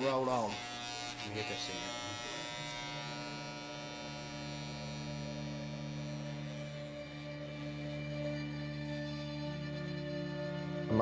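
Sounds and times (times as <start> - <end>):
electric hair clippers buzzing: 0.0 - 9.6.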